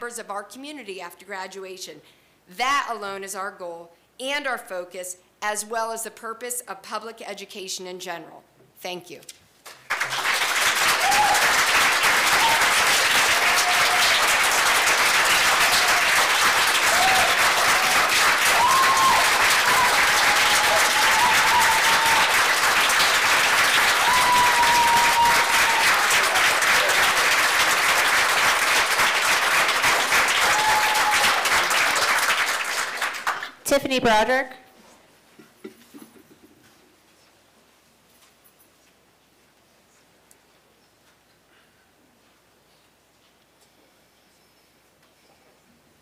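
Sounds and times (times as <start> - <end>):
audience applauding: 9.7 - 33.5
cheers: 10.0 - 28.0, 29.8 - 32.3.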